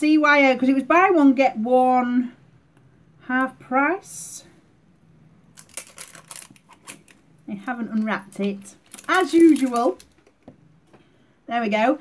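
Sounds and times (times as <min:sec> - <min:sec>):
plastic packaging crackling: 0:05.5 - 0:10.5.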